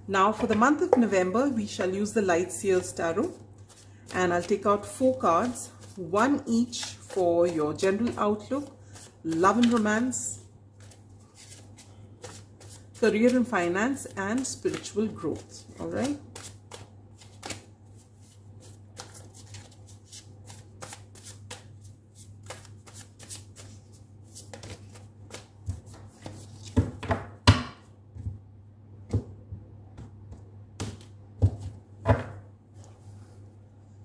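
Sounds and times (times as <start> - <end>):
cards being shuffled: 6.7 - 9.9, 10.8 - 13.5, 14.6 - 27.0.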